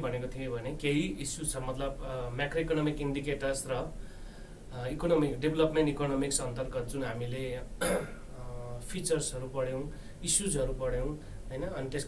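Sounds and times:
man talking: 0.0s - 4.0s, 4.7s - 12.0s
man clearing throat: 7.8s - 8.3s.

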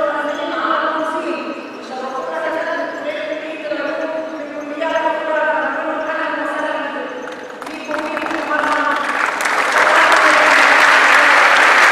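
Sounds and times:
woman talking into a microphone: 0.0s - 11.6s.

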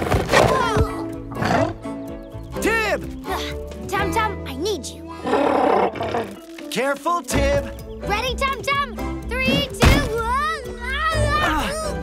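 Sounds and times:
cartoon background music: 0.0s - 12.0s
growling animal calls: 5.2s - 6.4s.

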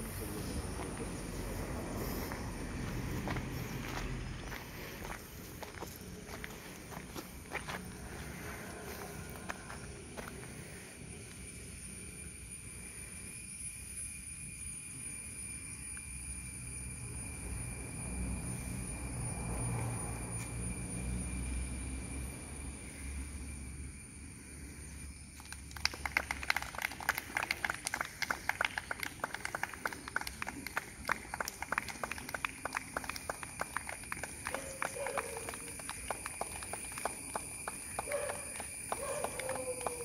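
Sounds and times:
rapid sharp clicks or claps: 25.4s - 40.0s.

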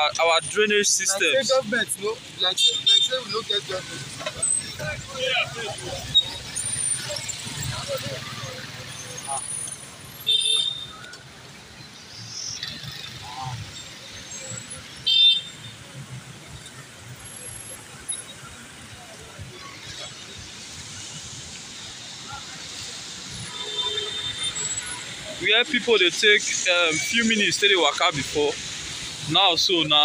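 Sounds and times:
traffic rumble on flooded street: 0.0s - 30.0s.

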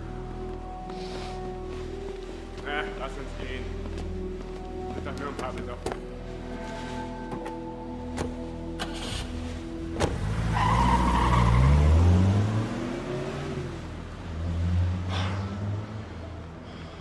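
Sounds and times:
car engine revving: 10.0s - 16.2s.

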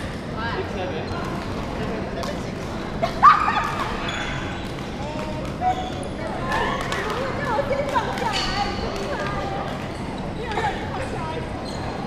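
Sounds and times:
sports hall din with voices: 0.0s - 12.0s
sneakers squeaking on floor: 2.7s - 12.0s.

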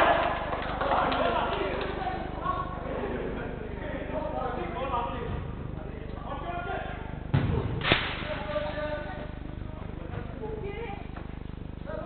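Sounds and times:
football impacts: 7.3s - 8.3s.

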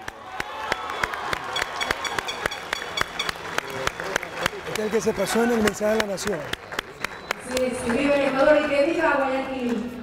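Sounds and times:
audience applauding: 0.0s - 9.0s.

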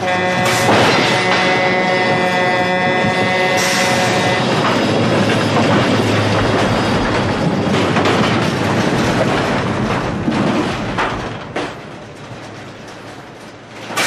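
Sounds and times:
truck air horn blaring: 0.0s - 4.6s
trailers rumbling and rattling: 0.0s - 14.0s.

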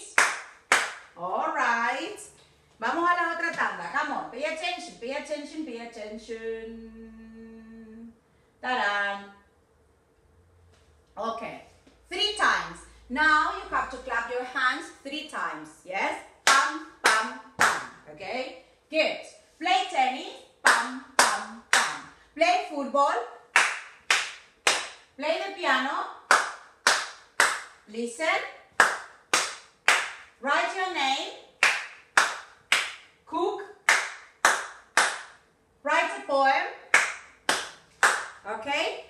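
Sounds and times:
hands clapping: 0.0s - 1.1s, 16.5s - 17.9s, 23.6s - 25.0s, 26.3s - 27.8s, 28.8s - 30.3s, 31.6s - 33.1s, 33.9s - 35.4s, 36.9s - 38.4s.

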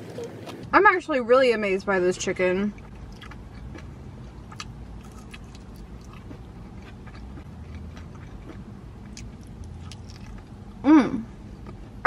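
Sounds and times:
steady low hum: 0.0s - 12.0s
person chewing fried chicken: 2.8s - 10.8s.

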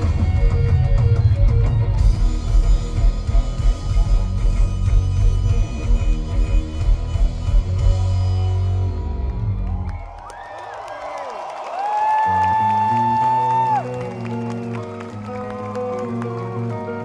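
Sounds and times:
live rock band playing: 0.0s - 9.6s, 12.6s - 17.0s
crowd cheering and whooping: 8.9s - 17.0s.

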